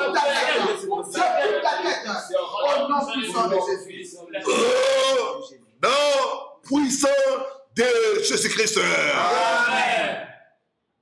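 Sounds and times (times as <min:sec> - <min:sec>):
man praying aloud: 0:04.5 - 0:10.2.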